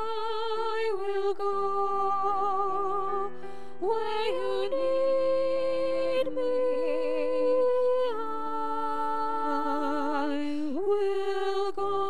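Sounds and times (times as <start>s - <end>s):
women singing in harmony: 0.0s - 12.0s.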